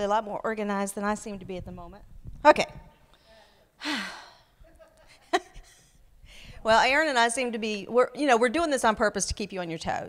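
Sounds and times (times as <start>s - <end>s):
woman sighing: 3.8s - 4.6s.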